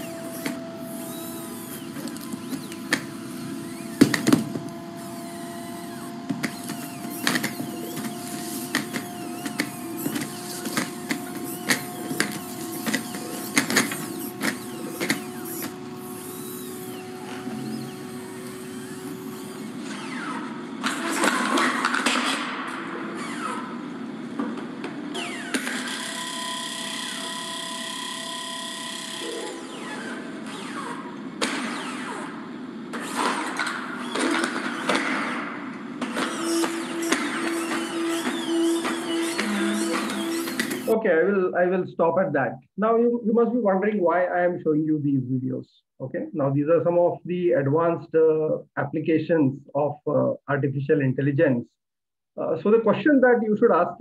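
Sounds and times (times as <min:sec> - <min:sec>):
robot hydraulic whine: 0:00.0 - 0:21.8, 0:23.0 - 0:24.0, 0:25.1 - 0:35.3, 0:36.1 - 0:41.0
sharp clicks and knocks: 0:01.8 - 0:03.2, 0:03.8 - 0:04.8, 0:06.2 - 0:15.8.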